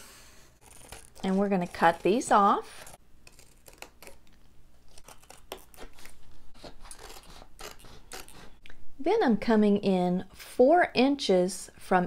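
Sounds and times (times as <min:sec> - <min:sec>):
scissors cutting poster board: 0:00.0 - 0:08.5.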